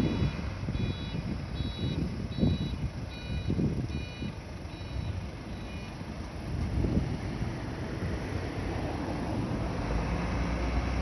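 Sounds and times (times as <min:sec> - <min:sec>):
reversing alarm beeping: 0:00.0 - 0:06.0
bus engine rumble: 0:00.0 - 0:11.0.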